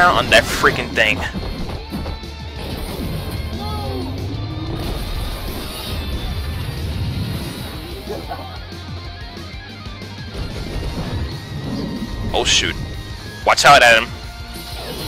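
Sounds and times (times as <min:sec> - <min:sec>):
action trailer music: 0:00.0 - 0:15.0.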